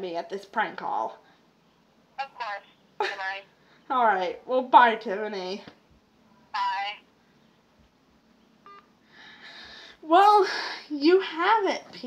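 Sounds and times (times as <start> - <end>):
short electronic phone beep: 8.7 - 8.9.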